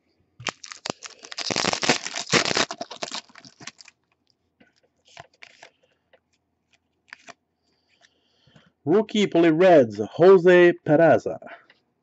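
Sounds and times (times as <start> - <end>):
foil wrapper tearing and crinkling: 0.4 - 4.0, 7.1 - 7.3.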